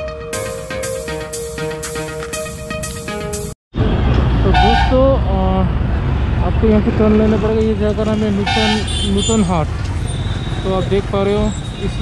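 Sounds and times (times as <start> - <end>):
heavy engine rumble of traffic: 3.8 - 12.0.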